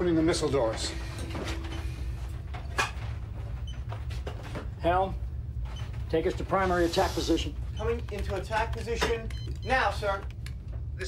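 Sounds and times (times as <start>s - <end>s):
machinery rumbling: 0.0s - 11.0s.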